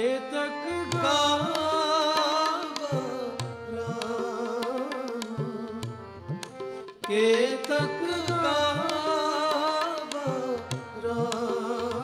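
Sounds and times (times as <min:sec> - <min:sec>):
harmonium sustained chords: 0:00.0 - 0:12.0
tabla rhythm with bending bass: 0:00.7 - 0:12.0.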